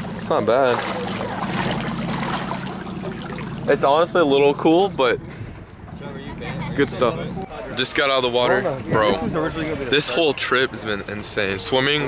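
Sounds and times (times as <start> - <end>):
water sloshing around wading legs: 0.0 - 4.6
steady low hum: 0.0 - 7.7.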